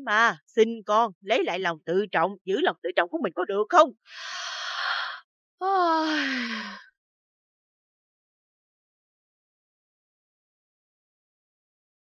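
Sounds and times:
woman breathing in: 4.1s - 5.2s, 6.1s - 6.8s
woman sighing: 5.8s - 6.8s.

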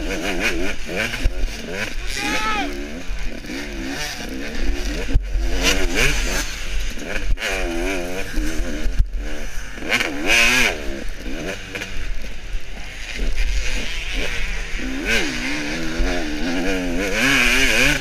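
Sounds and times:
two-stroke motorcycle engine revving: 0.0s - 18.0s.

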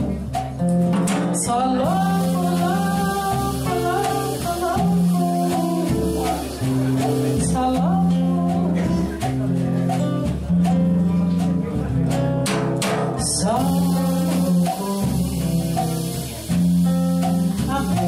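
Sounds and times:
nylon-string guitar chords: 0.0s - 18.0s
woman singing into microphone: 1.1s - 9.3s, 13.1s - 18.0s.

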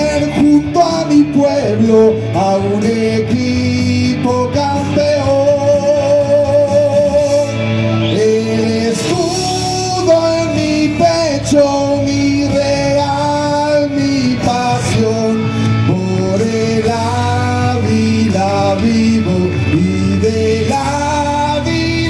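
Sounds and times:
man singing into microphone: 0.0s - 22.0s.

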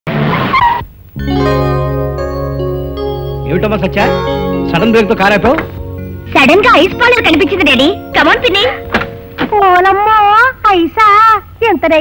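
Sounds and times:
background music held chord: 1.2s - 10.4s.

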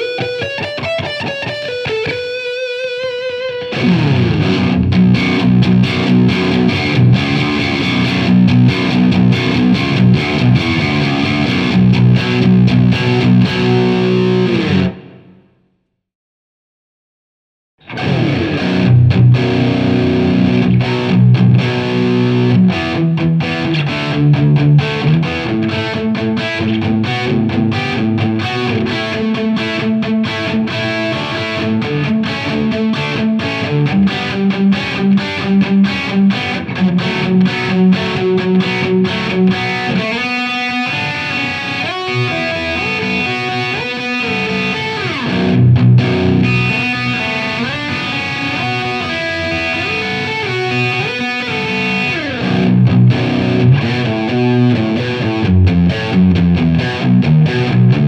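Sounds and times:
heavy distorted electric guitar riffing: 0.0s - 15.4s, 17.8s - 58.0s.

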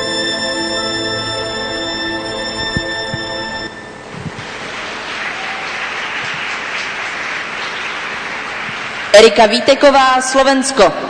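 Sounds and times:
audience applauding: 4.4s - 9.2s.

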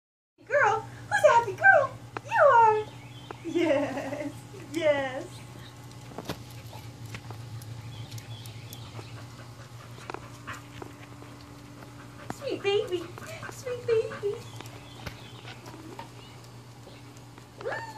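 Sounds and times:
steady low hum with ticks: 0.4s - 17.9s.

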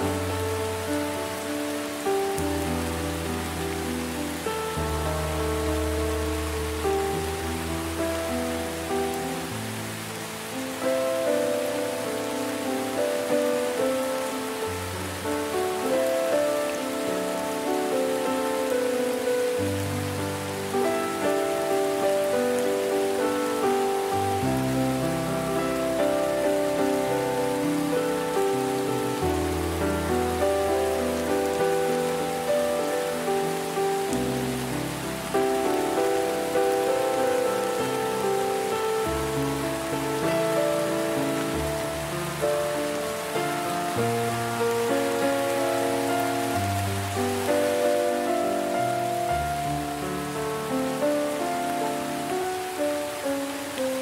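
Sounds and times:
slow calm music: 0.0s - 54.0s
steady rain falling: 0.0s - 54.0s.

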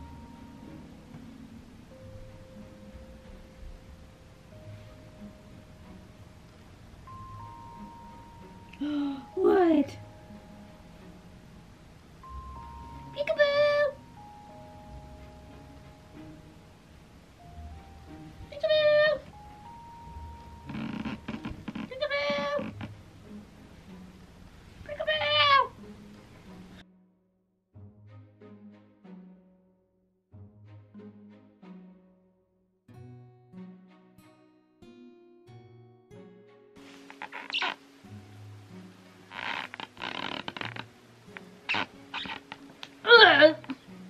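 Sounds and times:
faint steady hum: 0.0s - 26.8s
cat meowing: 21.8s - 22.8s, 25.0s - 25.8s
fleece blanket rustling: 36.8s - 38.2s.

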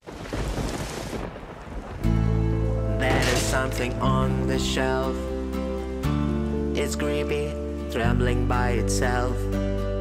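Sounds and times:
thunder rumbling: 0.0s - 5.0s
rain falling: 0.0s - 5.2s.

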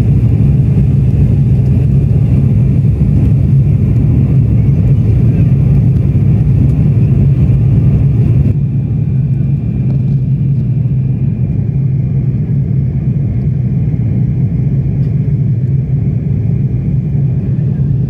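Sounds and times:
jet engine and airflow rumble: 0.0s - 18.0s.

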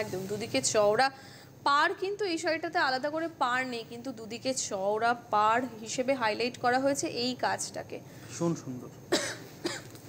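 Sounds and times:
person coughing: 9.1s - 10.0s.

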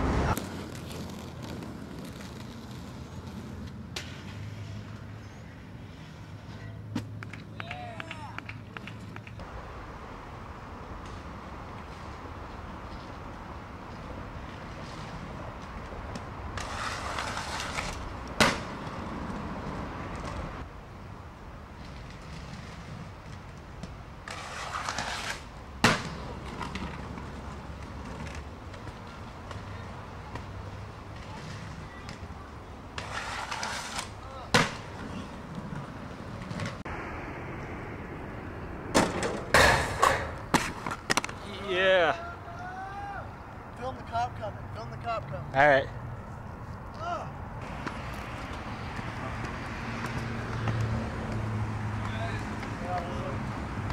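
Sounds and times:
skate wheels rolling on pavement: 0.0s - 53.9s.

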